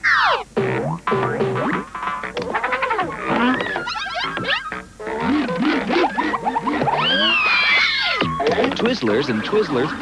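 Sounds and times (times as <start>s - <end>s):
swooping pitch bends: 0.0s - 1.9s, 2.7s - 8.4s
springy boings: 0.0s - 7.4s.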